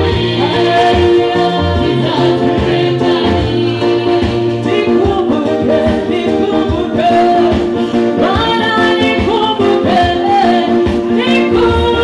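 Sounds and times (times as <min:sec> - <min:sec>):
gospel singing: 0:00.0 - 0:12.0
instrumental accompaniment: 0:00.0 - 0:12.0.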